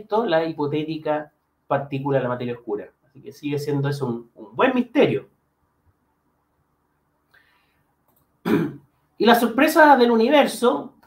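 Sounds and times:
man speaking: 0:00.0 - 0:05.3, 0:09.2 - 0:11.0
man clearing throat: 0:08.4 - 0:08.8.

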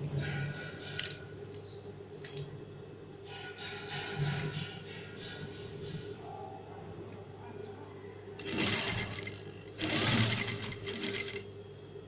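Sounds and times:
sewing machine stitching: 0:08.4 - 0:11.4.

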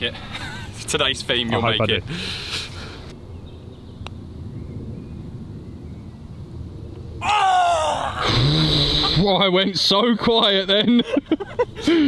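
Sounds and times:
man crying out loudly: 0:07.2 - 0:08.5.

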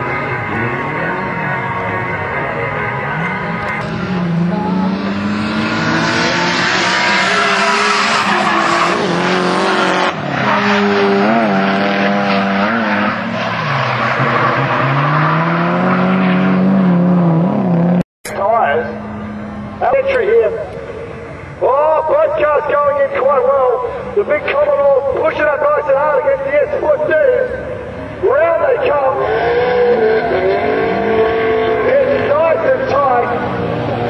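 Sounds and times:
car engines revving: 0:00.0 - 0:34.0.

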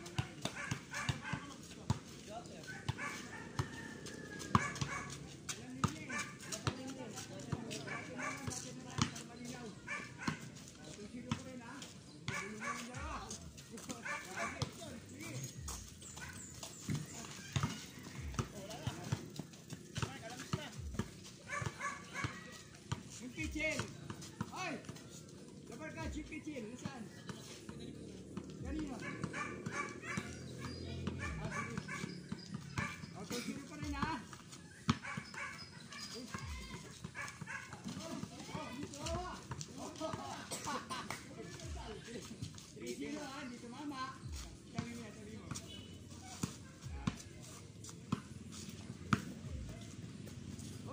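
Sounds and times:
basketball bouncing: 0:04.4 - 0:06.8, 0:08.4 - 0:09.2, 0:16.6 - 0:24.6, 0:28.4 - 0:40.2.

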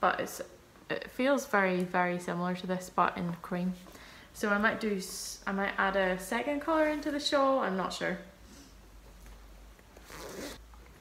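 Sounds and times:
zip on fabric bag: 0:10.0 - 0:10.6.

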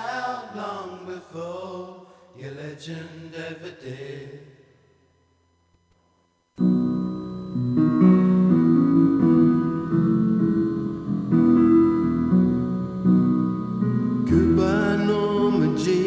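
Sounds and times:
acoustic guitar chords: 0:06.6 - 0:16.0.

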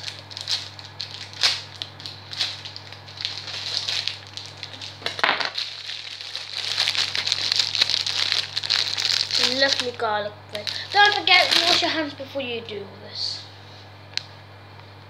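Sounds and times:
plastic wrapping crinkling: 0:00.0 - 0:12.1.

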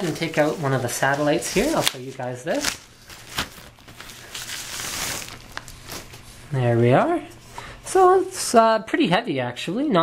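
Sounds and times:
plastic wrapping crinkling: 0:00.0 - 0:06.6.

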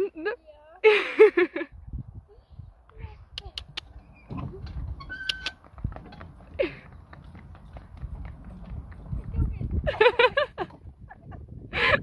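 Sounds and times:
hooves clip-clopping on pavement: 0:03.4 - 0:11.0.

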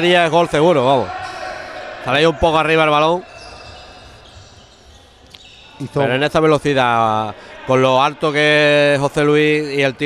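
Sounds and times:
reverberant hall background noise: 0:00.0 - 0:10.0.

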